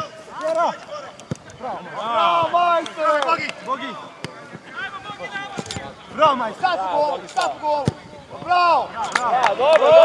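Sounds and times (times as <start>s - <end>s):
players shouting: 0.0s - 10.0s
ball being kicked: 7.8s - 8.5s.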